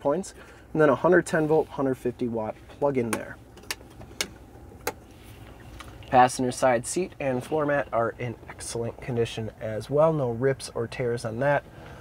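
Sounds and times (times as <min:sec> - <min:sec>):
low cabin hum: 0:00.0 - 0:12.0.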